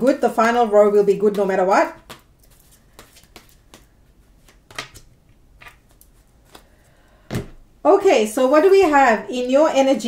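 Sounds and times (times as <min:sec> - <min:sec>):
cards tapping and flicking: 0:02.0 - 0:06.7.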